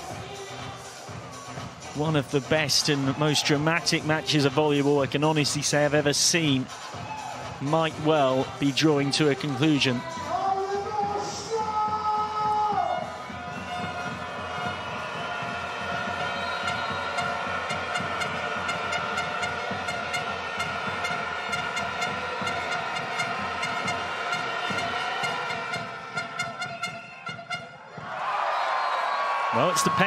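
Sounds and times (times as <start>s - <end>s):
music over sound system: 0.0s - 27.8s
crowd noise: 0.0s - 30.0s.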